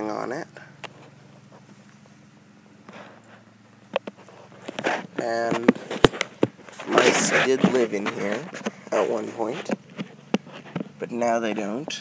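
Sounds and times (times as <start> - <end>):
person's voice: 5.2 - 5.8, 6.8 - 9.8, 11.0 - 12.0.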